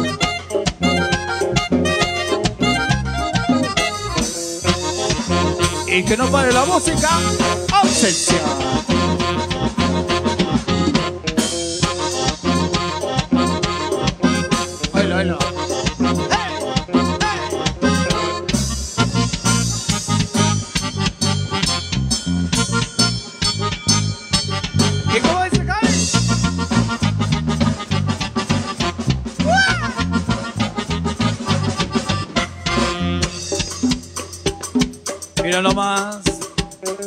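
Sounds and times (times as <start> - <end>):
keyboard sliding notes: 0.0 - 37.0
live band playing dance tune: 0.0 - 37.0.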